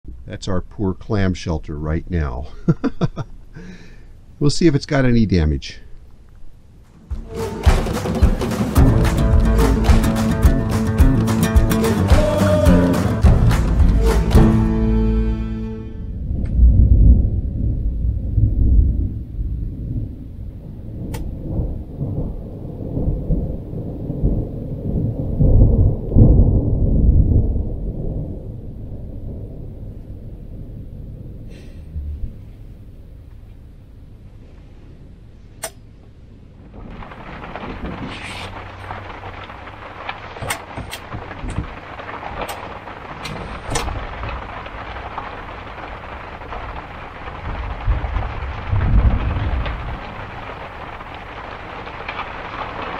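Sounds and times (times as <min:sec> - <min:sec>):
thunder rumbling: 0:06.9 - 0:35.4, 0:36.1 - 0:52.9
rain pouring on a trailer roof: 0:07.0 - 0:16.4, 0:36.4 - 0:52.9.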